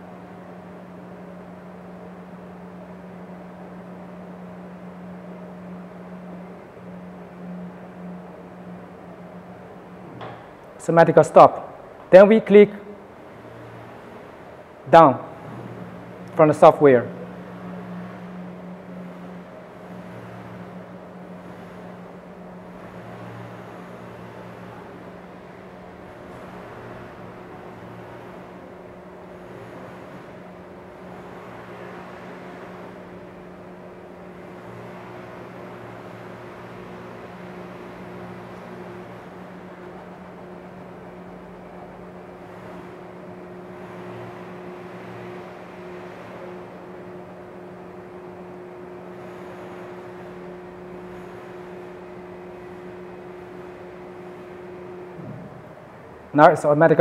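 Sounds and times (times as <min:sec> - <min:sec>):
printer lift drive humming: 0:00.0 - 0:57.0.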